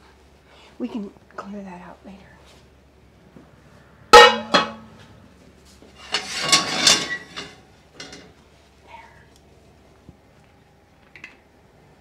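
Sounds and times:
frying pan clanging on stove grates: 0:04.2 - 0:04.9, 0:06.0 - 0:08.3
cookware scraping on stovetop: 0:05.8 - 0:08.3.

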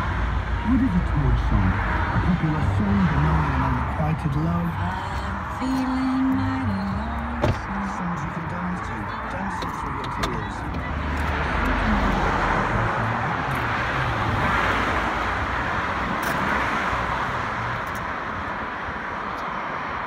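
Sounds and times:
passing vehicles rushing: 0:00.0 - 0:20.0.

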